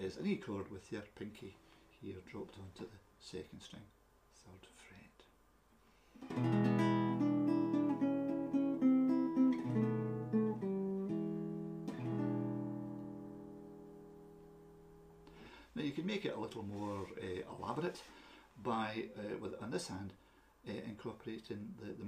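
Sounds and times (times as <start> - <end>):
acoustic guitar blues: 6.2 - 15.2.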